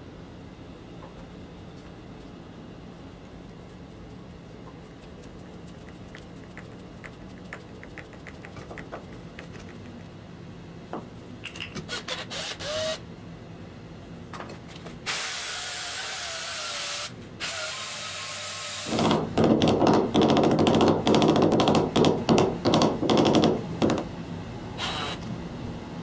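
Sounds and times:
cordless drill motor whine: 0:11.9 - 0:13.0, 0:15.1 - 0:19.0, 0:24.8 - 0:25.3.

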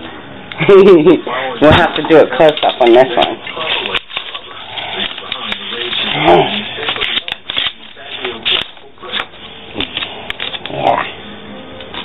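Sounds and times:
paper rustling and crinkling: 0:01.7 - 0:10.8.

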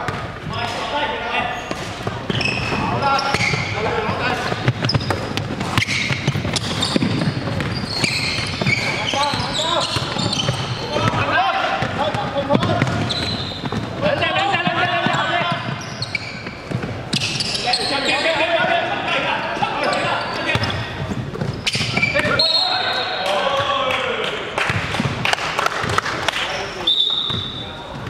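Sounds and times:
players calling out: 0:00.6 - 0:24.9
basketball bouncing on wooden floor: 0:01.7 - 0:17.3, 0:20.5 - 0:22.2.

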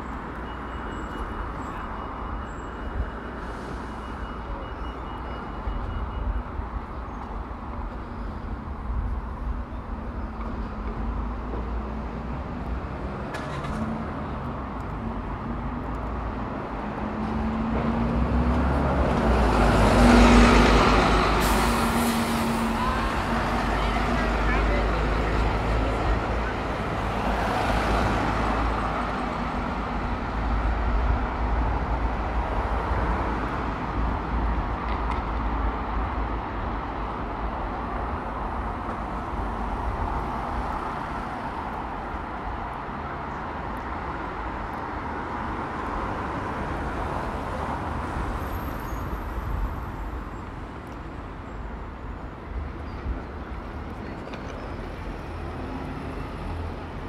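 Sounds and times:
vehicles passing by: 0:00.0 - 0:57.0.

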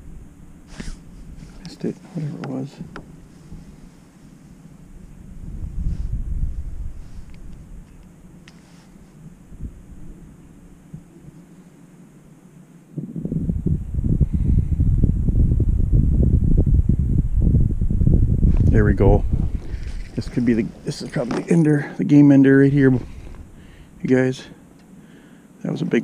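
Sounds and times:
wind buffeting microphone: 0:04.6 - 0:11.4, 0:13.0 - 0:24.3.

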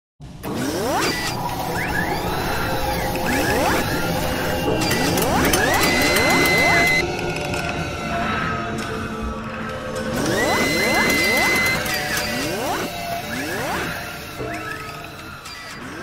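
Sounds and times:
mechanical clicks and clanks: 0:00.4 - 0:07.8, 0:10.0 - 0:16.0
rising whines: 0:00.4 - 0:08.1, 0:08.8 - 0:16.0
high tone: 0:01.7 - 0:07.0.

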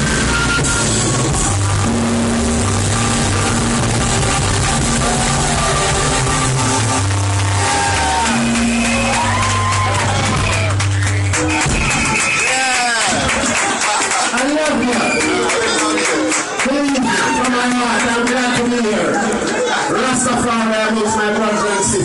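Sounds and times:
deep bass line: 0:00.0 - 0:12.5
reggae band playing: 0:00.0 - 0:20.4
keyboards: 0:00.0 - 0:22.0.

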